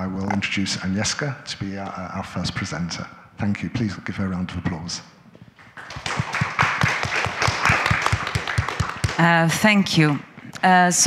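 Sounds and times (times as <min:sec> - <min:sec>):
audience applauding: 0:05.6 - 0:09.6.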